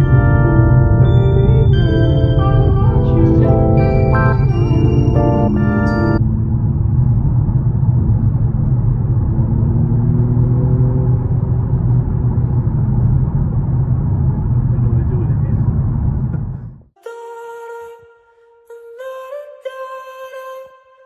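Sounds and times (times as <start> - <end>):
car engine and road noise: 5.3 - 16.9.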